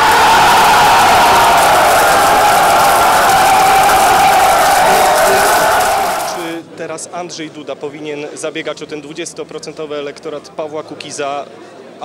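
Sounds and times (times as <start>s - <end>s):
large crowd cheering: 0.0s - 6.6s.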